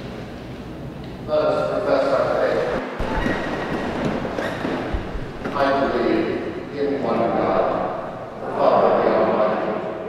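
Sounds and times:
crowd rustling and shuffling: 0:02.7 - 0:06.1.

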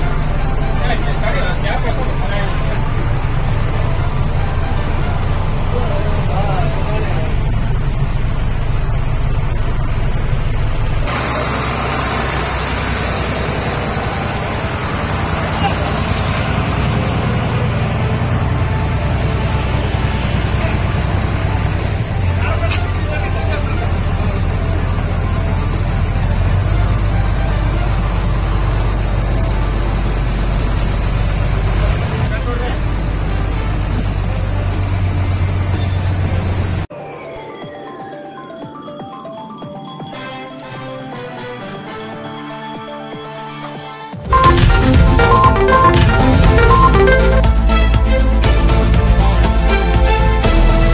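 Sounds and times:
music: 0:00.0 - 0:08.6, 0:17.1 - 0:30.7, 0:36.9 - 0:50.9
bus engine droning: 0:00.0 - 0:36.9, 0:44.2 - 0:50.9
voices: 0:00.7 - 0:03.4, 0:11.1 - 0:25.2.

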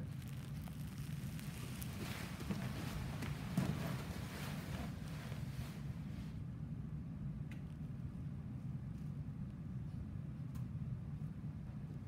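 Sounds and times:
faint rustling: 0:00.0 - 0:06.3
low room hum: 0:00.0 - 0:12.0.

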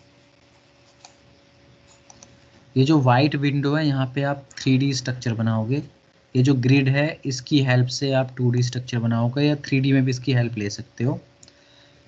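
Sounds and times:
faint steady hum: 0:00.0 - 0:12.0
computer mouse clicks: 0:00.8 - 0:01.2, 0:01.8 - 0:02.4
man speaking: 0:02.8 - 0:11.3.

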